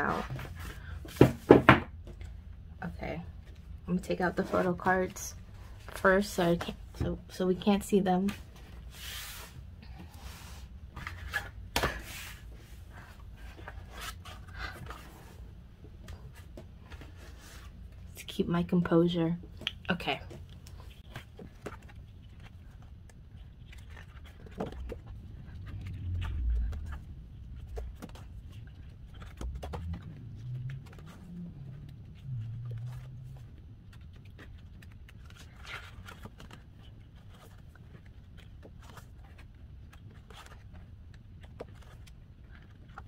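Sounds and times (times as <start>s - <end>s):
photobook pages turning: 20.6s - 43.0s.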